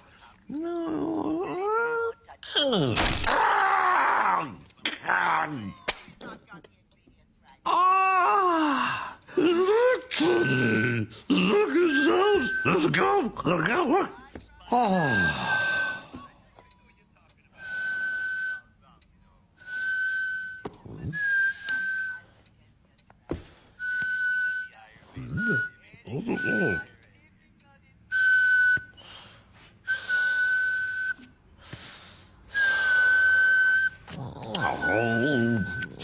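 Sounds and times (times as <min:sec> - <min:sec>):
wordless vocal grunts: 0:34.1 - 0:36.0.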